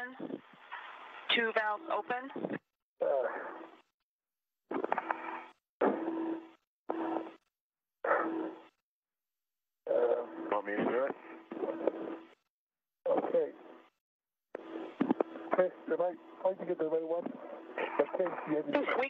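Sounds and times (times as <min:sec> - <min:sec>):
steady low hum: 0:09.8 - 0:12.5, 0:13.1 - 0:19.0
radio transmission voice: 0:09.9 - 0:12.2, 0:13.1 - 0:13.6, 0:15.0 - 0:19.0.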